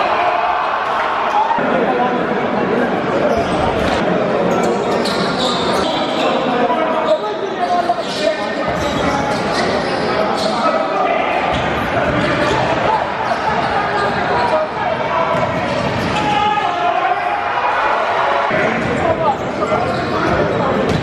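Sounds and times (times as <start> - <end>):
chatter of spectators: 0.0 - 21.0.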